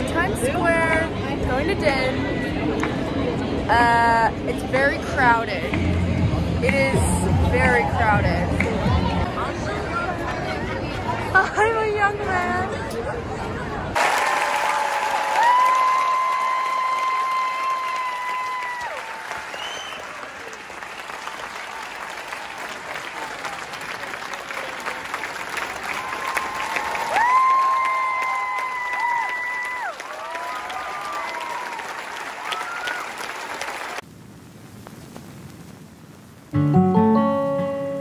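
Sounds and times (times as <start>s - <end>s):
audience applauding: 14.0s - 34.0s.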